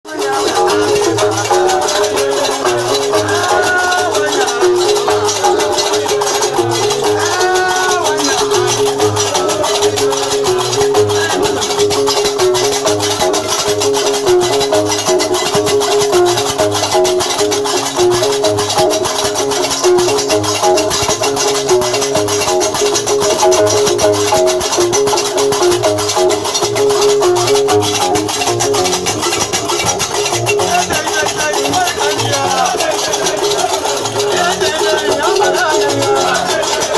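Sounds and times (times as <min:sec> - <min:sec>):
low plucked bass line: 0:00.1 - 0:36.9
metal castanets clattering: 0:00.2 - 0:36.9.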